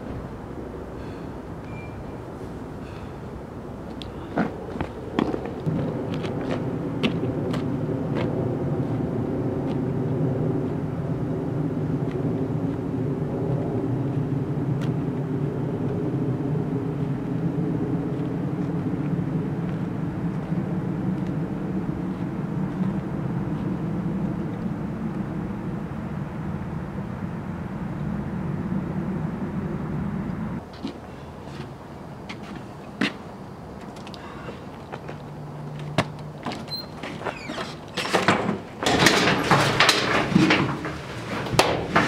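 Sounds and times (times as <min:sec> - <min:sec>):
low engine drone: 0:00.0 - 0:37.6.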